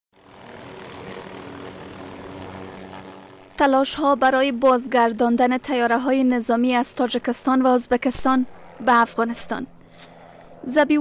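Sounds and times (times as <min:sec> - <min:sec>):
helicopter engine and rotor: 0:00.3 - 0:11.0.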